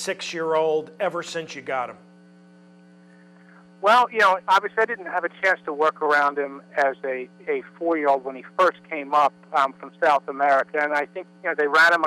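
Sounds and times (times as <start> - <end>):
man speaking: 0.0 - 2.0, 3.8 - 12.0
electrical mains hum: 0.0 - 12.0.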